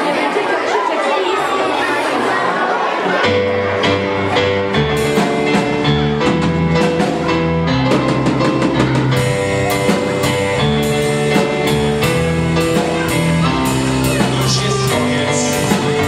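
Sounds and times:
live band playing: 3.2s - 16.0s.

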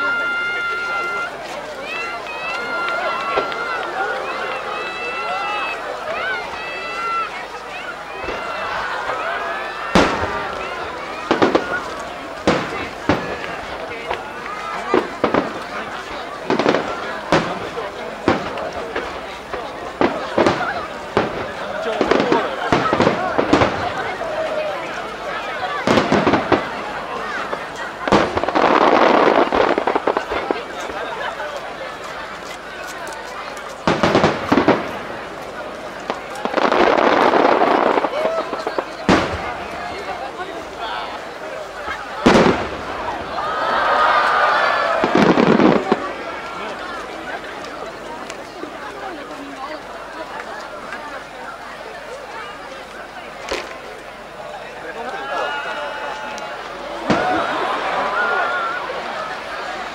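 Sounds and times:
dense hissing of fireworks: 0.0s - 59.9s.

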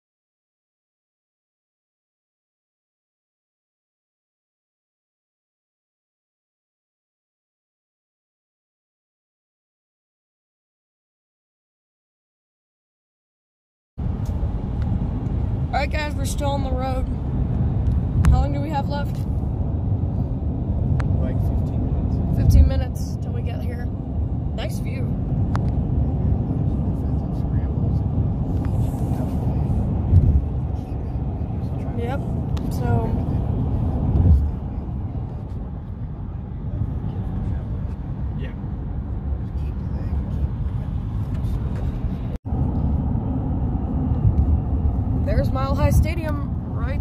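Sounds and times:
car road and engine noise: 14.0s - 47.0s.

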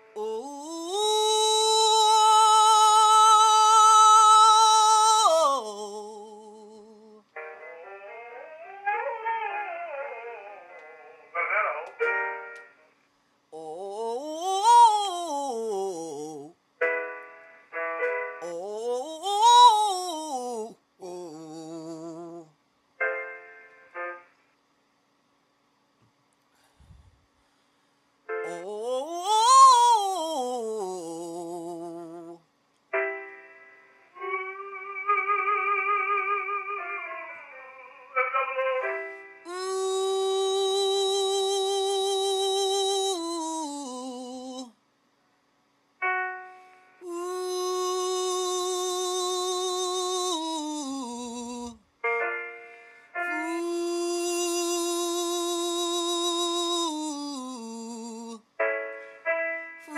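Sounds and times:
man singing vocal exercises: 0.1s - 7.2s, 13.6s - 16.6s, 18.4s - 22.5s, 28.4s - 32.4s, 39.5s - 44.8s, 47.0s - 51.8s, 53.2s - 58.5s.

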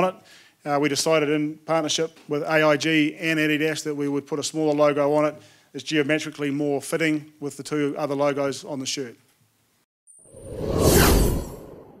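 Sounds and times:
whoosh sound effect: 10.2s - 12.0s.

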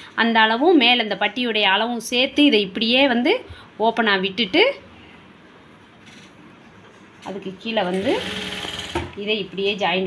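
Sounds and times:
woman's voice: 0.2s - 4.8s, 7.2s - 8.4s, 9.2s - 10.0s
electric sewing machine stitching: 7.9s - 9.1s.

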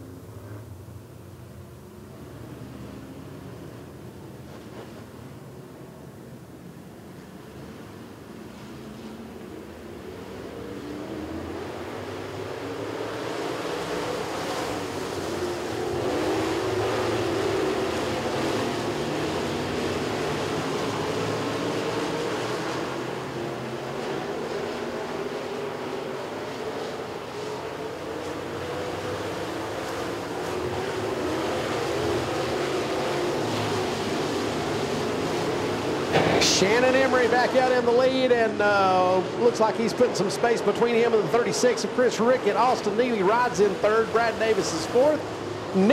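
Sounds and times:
race car engines running hard: 0.0s - 45.9s.

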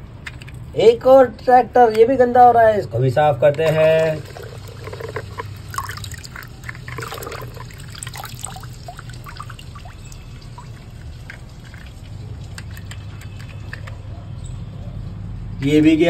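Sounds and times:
low steady hum: 3.6s - 12.4s
water dripping and trickling: 3.7s - 14.0s
toy splashing in water: 3.8s - 13.6s.

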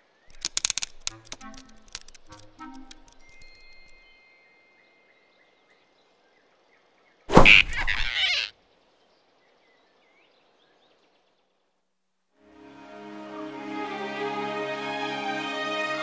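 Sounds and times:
faint forest ambience: 0.0s - 16.0s
soft bird chirps: 0.3s - 8.5s.

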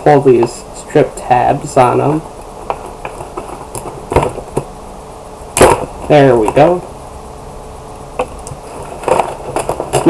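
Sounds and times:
plastic packaging clicks and scrapes: 2.6s - 4.7s, 8.2s - 10.0s.

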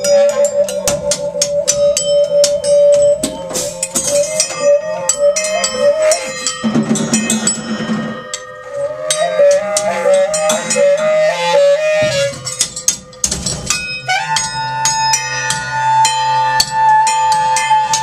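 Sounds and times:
saxophone playing: 0.0s - 12.6s, 14.0s - 18.0s
cymbal and percussion hits: 0.0s - 18.0s.

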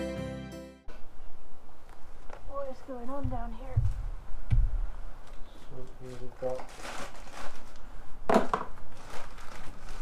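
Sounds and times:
rustling of packaging: 6.0s - 10.0s.

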